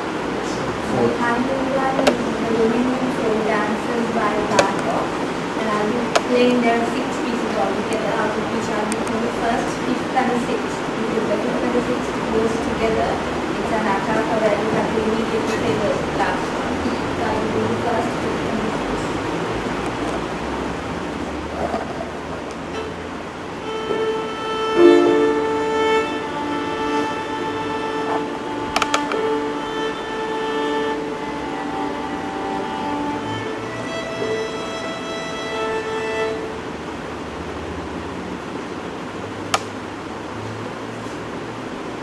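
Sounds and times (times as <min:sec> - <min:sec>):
violin bowing sustained notes: 0:22.7 - 0:37.0.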